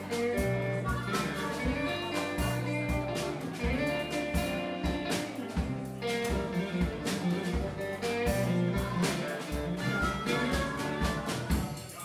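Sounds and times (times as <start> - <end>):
drum kit steady beat: 0.0 - 12.0
electric guitar: 0.0 - 12.0.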